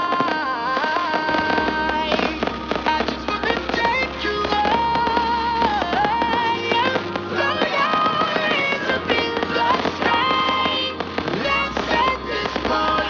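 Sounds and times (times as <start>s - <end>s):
fireworks popping and crackling: 0.0s - 13.0s
music with melody and bass: 0.0s - 13.0s.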